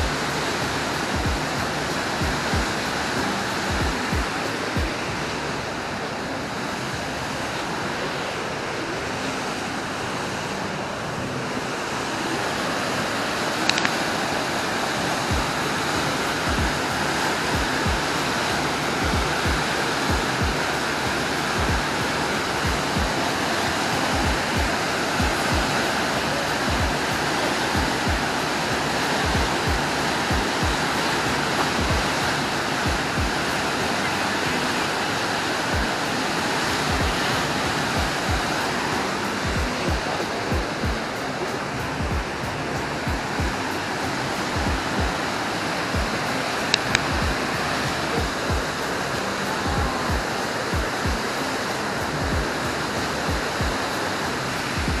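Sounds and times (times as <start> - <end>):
music with steady drum beat: 0.0 - 5.2, 15.3 - 15.7, 16.5 - 18.1, 19.0 - 20.8, 21.6 - 23.2, 24.1 - 25.8, 26.7 - 28.4, 29.1 - 30.9, 31.7 - 33.4, 35.7 - 35.9, 36.9 - 38.7, 39.4 - 41.2, 42.0 - 43.7, 44.6 - 45.2, 46.0 - 46.2, 46.9 - 48.8, 49.6 - 51.4, 52.1 - 53.9, 54.8 - 55.0
whitewater rushing: 0.0 - 55.0.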